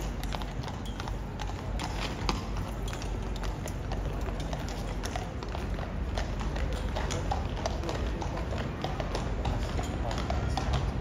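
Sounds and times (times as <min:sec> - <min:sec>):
horse hooves on stone paving: 0:00.0 - 0:11.0.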